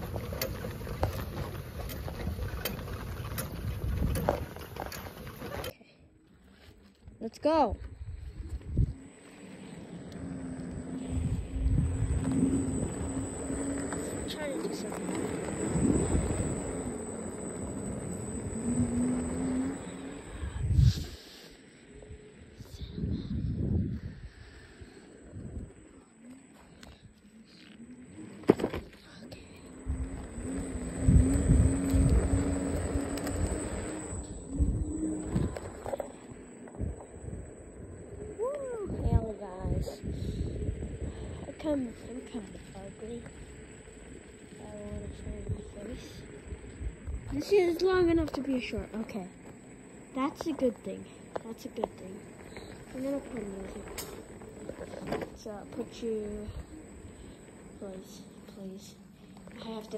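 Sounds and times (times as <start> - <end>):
faint steady hum: 0.0 - 59.9
wheels rolling on asphalt: 0.0 - 59.9.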